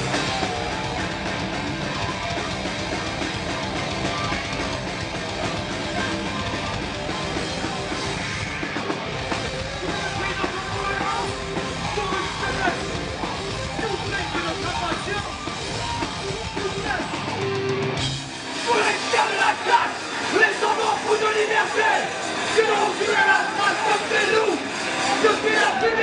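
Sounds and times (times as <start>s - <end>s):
electric guitars: 0.0s - 26.0s
pounding drum kit: 0.0s - 26.0s.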